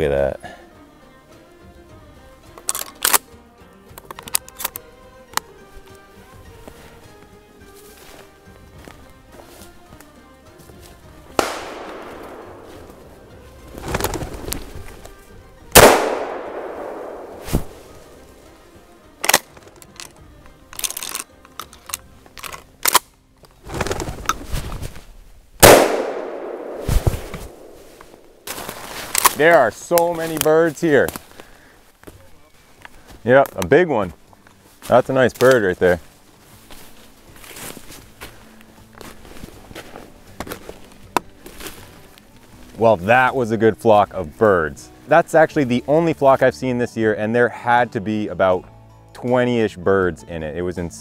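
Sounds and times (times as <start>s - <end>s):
faint background music: 0.0s - 51.0s
shotgun shots with echo: 11.4s - 13.3s, 15.8s - 18.0s, 25.6s - 28.3s.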